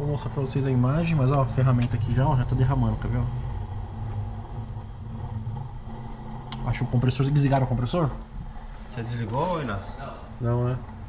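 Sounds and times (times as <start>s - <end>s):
machine humming: 0.0s - 11.0s.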